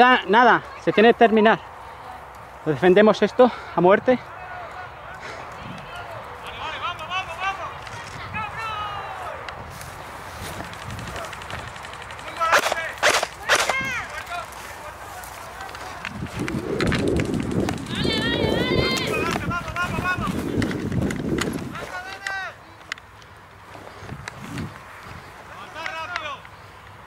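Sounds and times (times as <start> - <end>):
men shouting: 4.0 - 9.5, 17.8 - 20.5
low rumbling: 15.4 - 21.8
faint clicks: 20.6 - 23.5.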